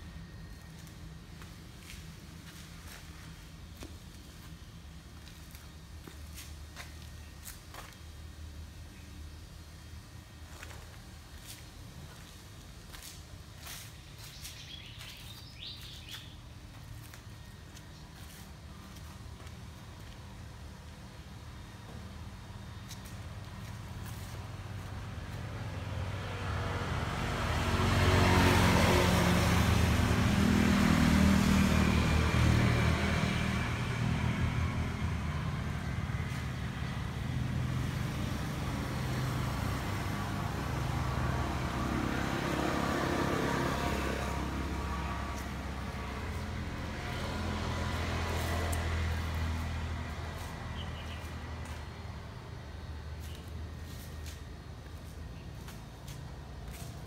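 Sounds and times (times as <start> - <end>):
engine running steadily: 29.0 - 57.0.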